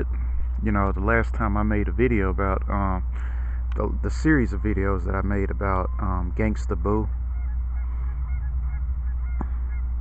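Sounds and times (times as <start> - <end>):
geese honking: 0.0 - 10.0
steady low rumble: 0.0 - 10.0.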